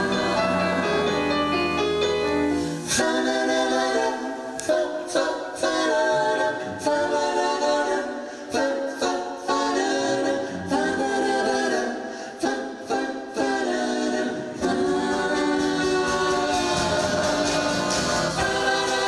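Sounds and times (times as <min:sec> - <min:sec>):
vocal group singing in harmony: 0:00.0 - 0:19.0.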